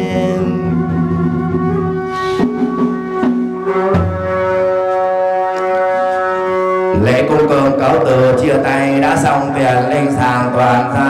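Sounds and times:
reedy wind instrument long note: 0:00.0 - 0:08.4.

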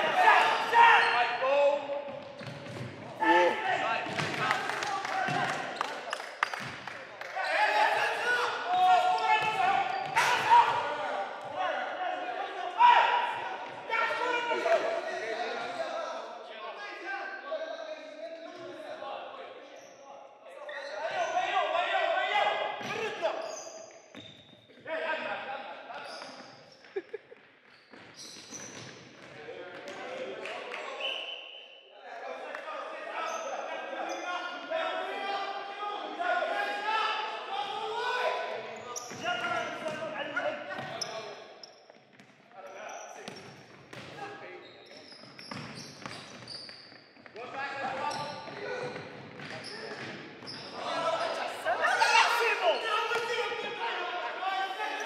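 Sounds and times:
players calling out: 0:03.2 - 0:06.2, 0:49.9 - 0:55.0.

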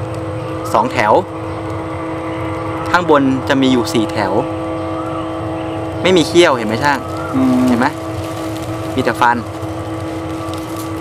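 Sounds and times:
steady low hum with held tones: 0:00.0 - 0:11.0
man speaking: 0:06.0 - 0:08.0, 0:08.9 - 0:09.5.

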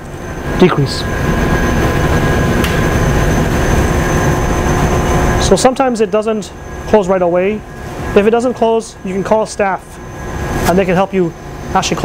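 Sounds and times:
machine rumble and hum: 0:00.0 - 0:12.0
constant high tones: 0:00.2 - 0:12.0.

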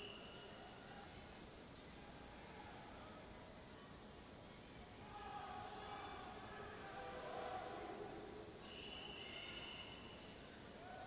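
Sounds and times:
murmur of spectators: 0:00.0 - 0:11.0.

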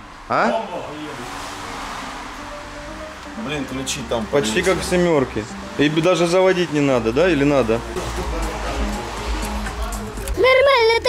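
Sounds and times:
music with deep subwoofer bass: 0:07.2 - 0:11.0.

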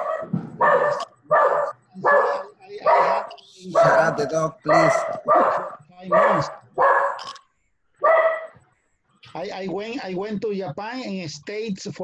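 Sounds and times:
dog barking through video call: 0:00.0 - 0:07.4, 0:08.0 - 0:08.6.

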